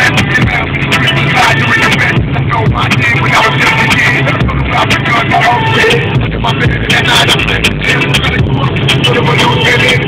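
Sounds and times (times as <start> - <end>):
car cabin road and wind noise: 0.0 - 10.0
music playing: 0.0 - 10.0.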